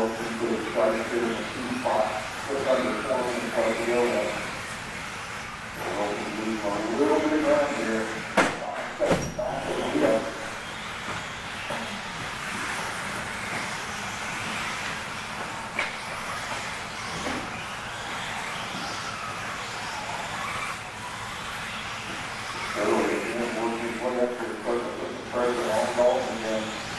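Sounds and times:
rc car motors and tyres hissing: 0.0 - 8.4, 9.2 - 26.9.

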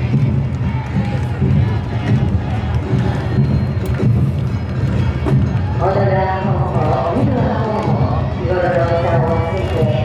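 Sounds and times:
dancers chanting calls: 0.0 - 10.0
steady pulsing beat: 0.0 - 10.0.

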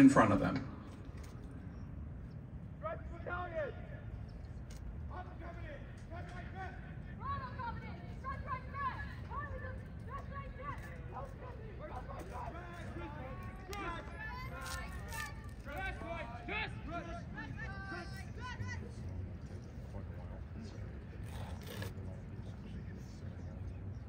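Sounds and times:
steady low background noise: 0.0 - 24.0.

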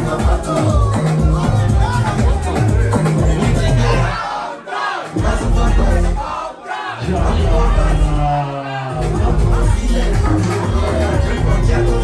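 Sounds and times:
crowd shouting and singing along: 0.0 - 12.0
loud dance music: 0.0 - 12.0.

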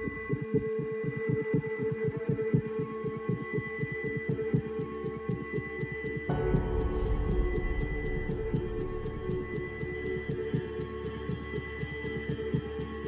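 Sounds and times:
low throbbing pulse: 4.4 - 13.0.

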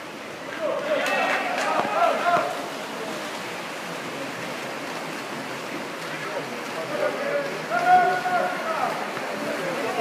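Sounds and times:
water splashing: 0.0 - 10.0
voices shouting indoors: 0.6 - 2.6, 7.7 - 9.0.

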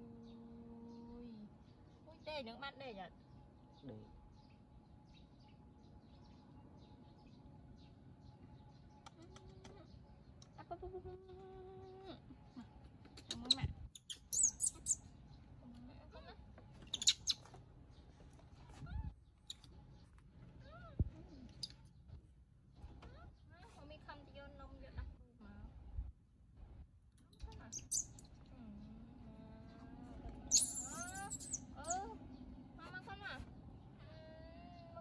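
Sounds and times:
baby monkey squeaking: 13.2 - 15.1, 16.8 - 17.5, 27.6 - 28.3, 30.5 - 32.1
baby monkey wavering cry: 13.5 - 15.0, 27.7 - 28.2, 30.5 - 32.1.

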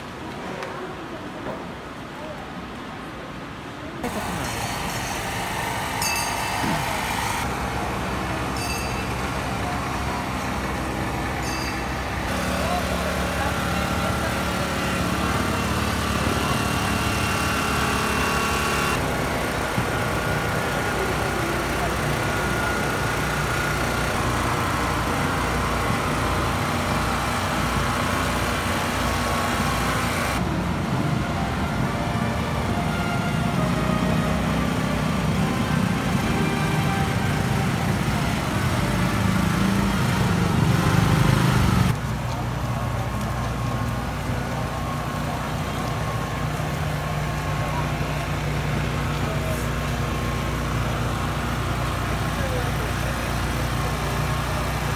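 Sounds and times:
crowd voices: 0.0 - 54.9
small engine running: 4.0 - 30.6, 32.3 - 42.0, 42.6 - 54.9.

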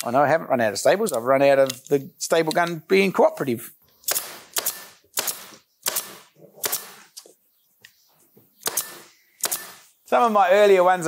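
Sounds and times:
pneumatic staple gun firing: 4.1 - 7.0, 8.6 - 9.9.

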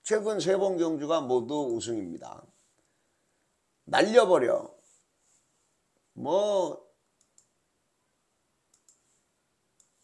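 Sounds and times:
faint clicks: 7.2 - 7.6, 8.7 - 9.1.

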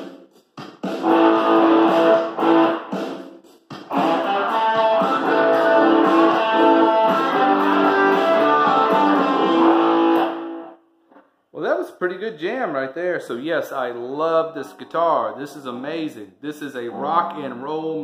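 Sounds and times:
amplified electric guitar riff: 1.0 - 3.0, 3.9 - 10.8, 16.9 - 17.6
man's voice: 11.6 - 18.0.

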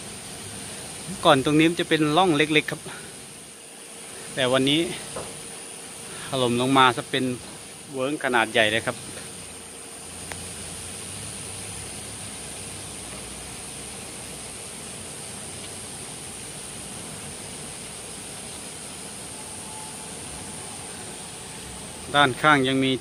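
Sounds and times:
even hiss: 0.0 - 23.0
high-pitched insect drone: 0.0 - 23.0.

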